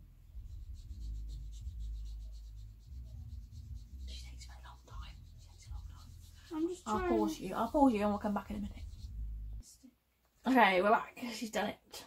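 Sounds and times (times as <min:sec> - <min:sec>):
marker pens stroking paper: 0:00.6 - 0:09.2.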